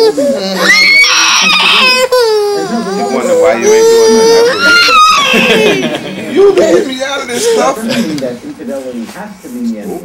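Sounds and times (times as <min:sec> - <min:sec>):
baby crying loudly: 0:00.0 - 0:05.8.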